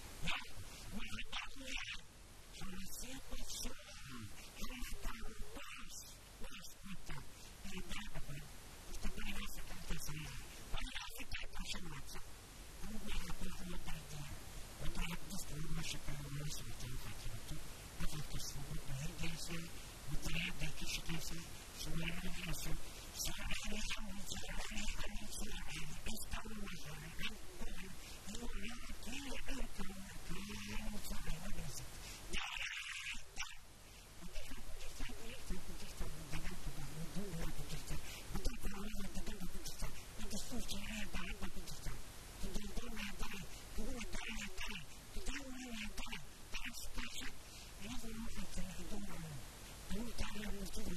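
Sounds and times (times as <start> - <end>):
elderly man talking into microphone: 0.0 - 12.2, 12.8 - 33.6, 34.2 - 50.9.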